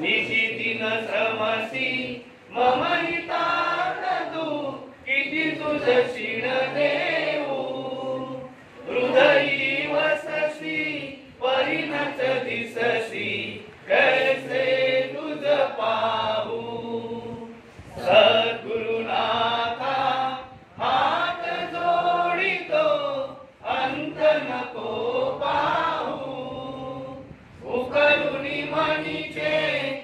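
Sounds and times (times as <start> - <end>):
congregation chanting a hymn: 0.0 - 30.0.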